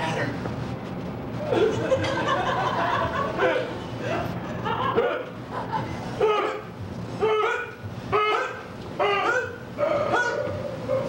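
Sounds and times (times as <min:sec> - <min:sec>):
dog yelping barks: 0:06.2 - 0:11.0.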